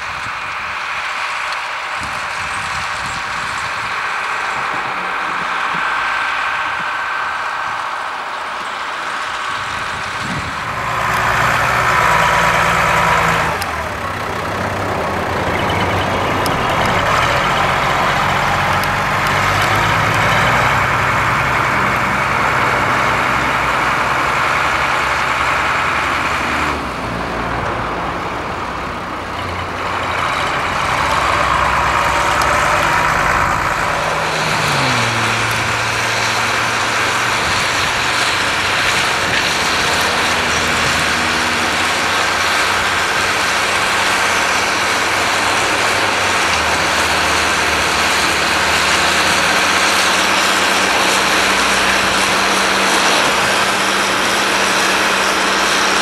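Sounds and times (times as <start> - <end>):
machinery noise: 0.0 - 56.0
tractor diesel engine under load: 0.0 - 56.0.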